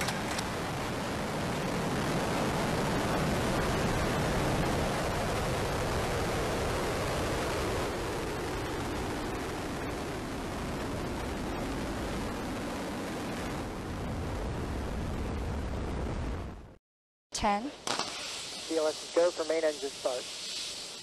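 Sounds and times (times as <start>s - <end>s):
rocket booster roar: 0.0s - 16.7s.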